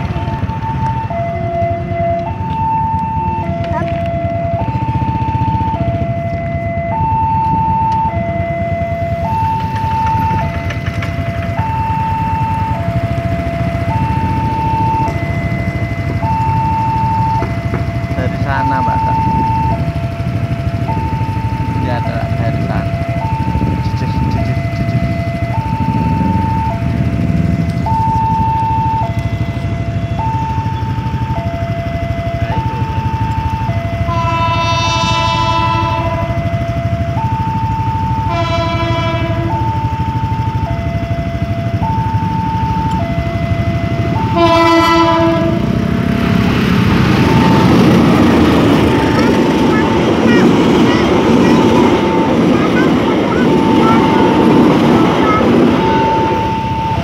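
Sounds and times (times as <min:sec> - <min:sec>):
level crossing two-tone alarm: 0:00.0 - 0:57.0
train passing: 0:00.0 - 0:57.0
train horn blasts: 0:34.0 - 0:36.4, 0:38.1 - 0:39.7, 0:44.2 - 0:45.8.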